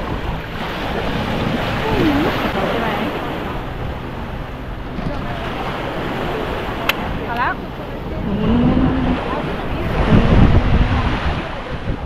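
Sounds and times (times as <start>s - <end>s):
small waves washing on shore: 0.0s - 12.0s
wind buffeting microphone: 0.0s - 12.0s.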